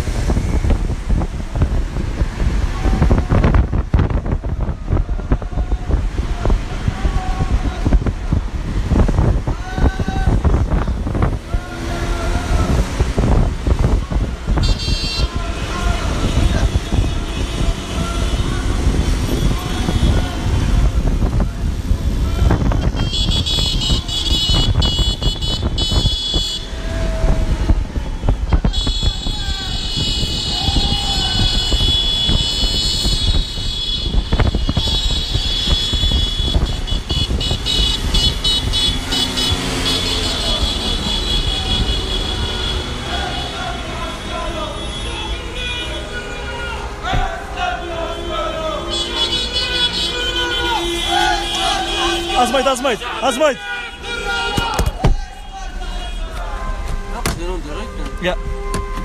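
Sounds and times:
motorcycle and car engines: 0.0s - 22.8s, 23.4s - 44.9s
wind rumble on microphone: 0.0s - 39.6s
vehicle horns: 10.2s - 21.4s, 22.0s - 59.0s.

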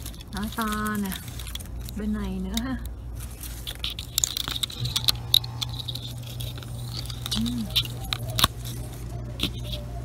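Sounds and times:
rustling of plants and leaves: 0.0s - 10.0s
steady low hum: 0.0s - 10.0s
person murmuring: 7.4s - 7.8s.

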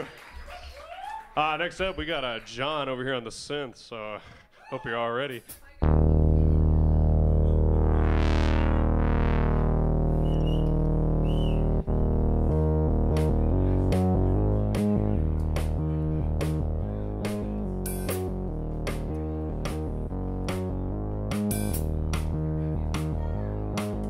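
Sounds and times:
synthesizer chord with sweeping filter: 5.8s - 24.0s.

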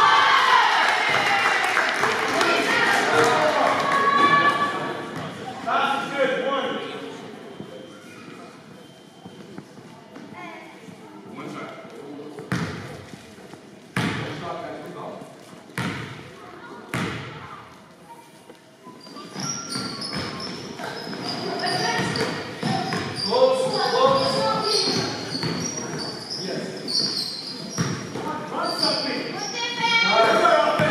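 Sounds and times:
murmur of voices: 0.0s - 30.9s
sneakers squeaking on court: 7.3s - 11.0s, 12.4s - 14.3s, 15.6s - 16.3s, 16.9s - 30.9s.

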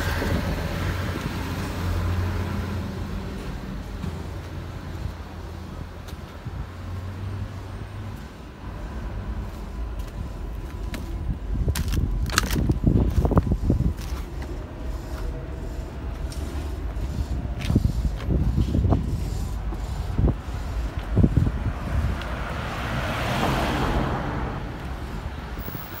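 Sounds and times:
low traffic rumble: 0.0s - 26.0s
vehicle passing: 12.8s - 26.0s.

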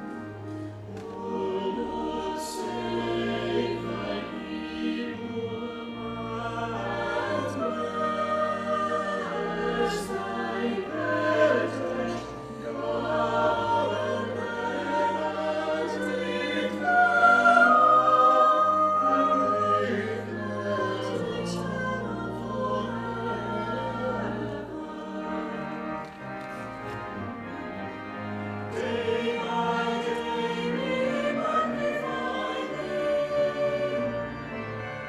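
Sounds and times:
choir singing sustained chords: 0.0s - 35.0s.

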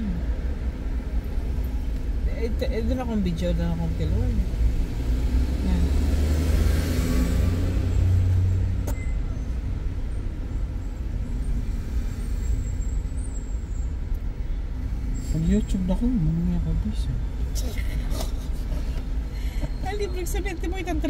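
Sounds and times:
engine and traffic rumble: 0.0s - 21.0s.

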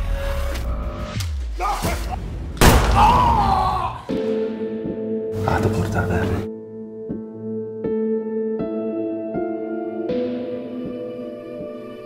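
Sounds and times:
loud impact hit: 2.6s - 3.3s.

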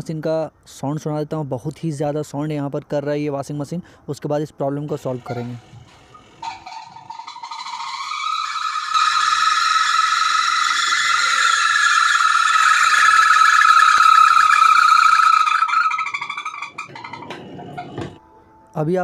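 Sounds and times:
washing machine spinning with squeal: 4.8s - 18.2s.

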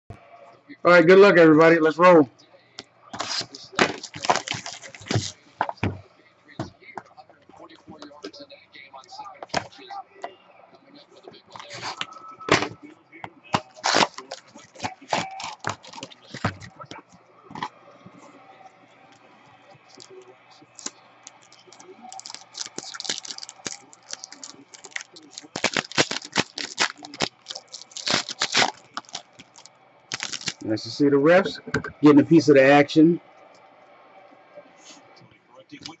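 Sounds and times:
foil wrapper tearing and crinkling: 3.2s - 5.4s, 13.6s - 16.6s, 20.8s - 30.6s
cards sliding and shuffling: 3.2s - 6.0s, 11.6s - 12.8s, 13.5s - 16.7s.

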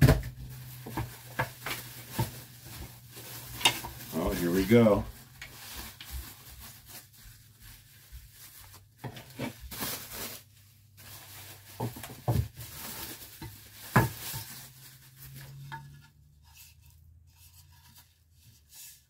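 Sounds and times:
bubble wrap rustling and crinkling: 0.0s - 19.0s.

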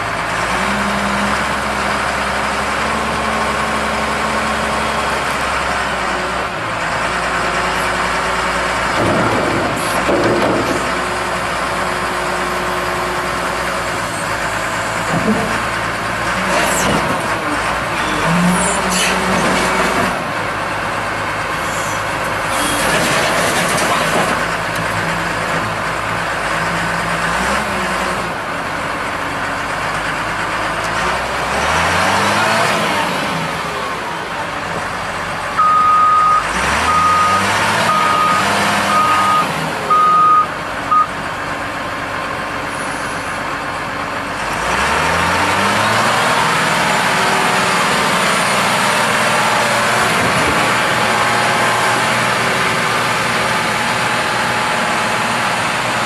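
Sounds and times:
wheel loader diesel engine revving: 0.0s - 56.0s
backup alarm beeping: 35.6s - 41.1s.

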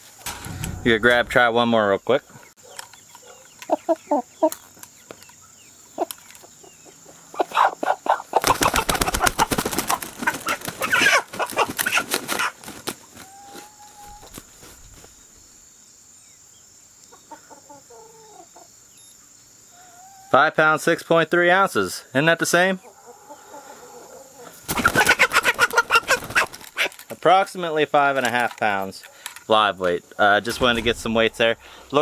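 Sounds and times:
chicken clucking and squawking: 6.0s - 15.0s, 17.1s - 18.7s, 19.7s - 20.4s, 22.7s - 27.0s
wing flapping: 8.4s - 13.3s, 14.0s - 15.3s, 24.6s - 27.1s.

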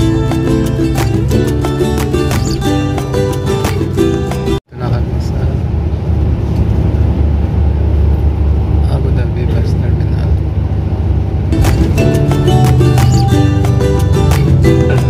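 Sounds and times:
overlaid music: 0.0s - 4.6s, 11.5s - 15.0s
vehicle interior rumble: 0.5s - 15.0s.

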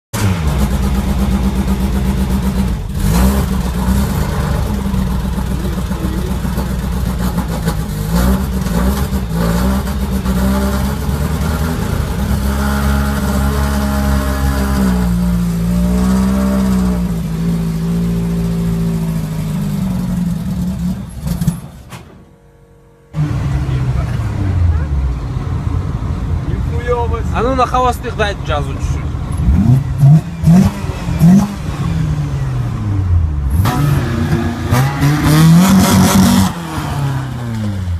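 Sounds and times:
car engine revving: 0.2s - 21.9s, 23.0s - 27.7s, 28.4s - 37.9s.

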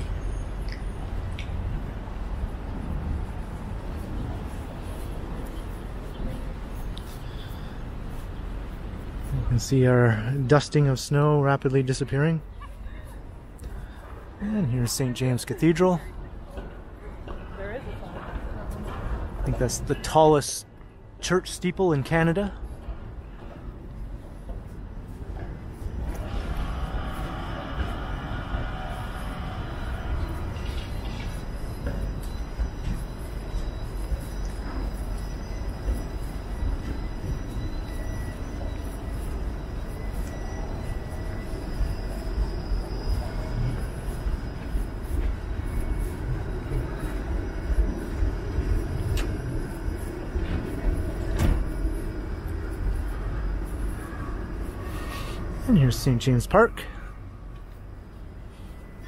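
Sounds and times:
streetcar rumbling on track: 0.0s - 59.0s
faint high whine: 23.7s - 59.0s.

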